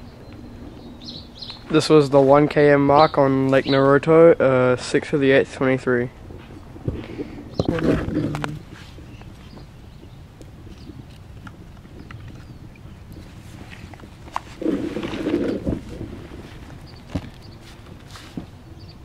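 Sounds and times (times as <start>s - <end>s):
steady low background: 0.0s - 19.0s
vocal sounds: 6.9s - 8.7s.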